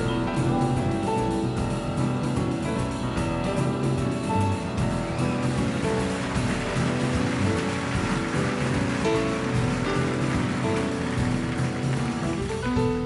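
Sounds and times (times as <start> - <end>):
piano: 0.0 - 13.0
upright bass: 0.0 - 13.0.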